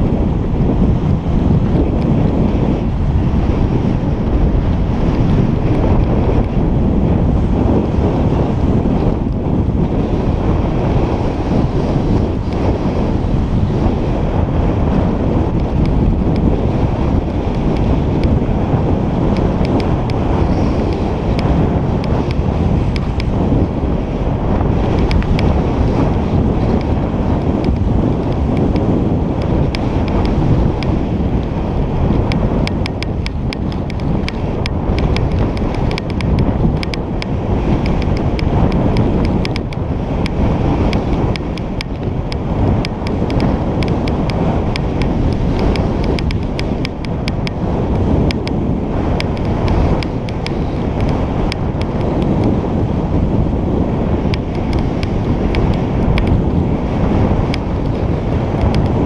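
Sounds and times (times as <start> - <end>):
wind buffeting microphone: 0.0 - 59.0
faint ticks: 19.3 - 23.3, 24.9 - 25.5, 27.6 - 31.5, 32.2 - 48.6, 49.2 - 52.5, 54.3 - 56.4, 57.4 - 59.0.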